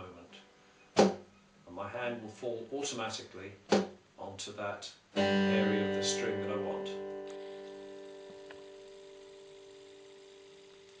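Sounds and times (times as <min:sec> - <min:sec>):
acoustic guitar chord ringing: 0:05.2 - 0:10.7.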